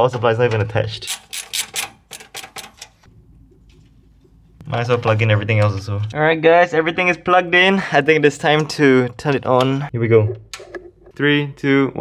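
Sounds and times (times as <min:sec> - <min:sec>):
screwdriver driving screws: 0:01.1 - 0:02.8.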